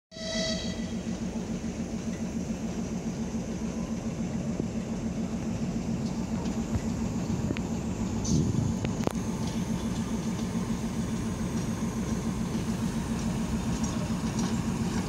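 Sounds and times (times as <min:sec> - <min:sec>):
short high tone: 0:00.1 - 0:01.0
diesel locomotive engine droning: 0:00.1 - 0:15.0.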